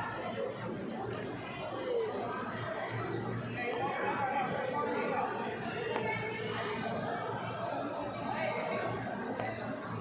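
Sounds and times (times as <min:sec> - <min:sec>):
indistinct crowd chatter: 0:00.0 - 0:10.0.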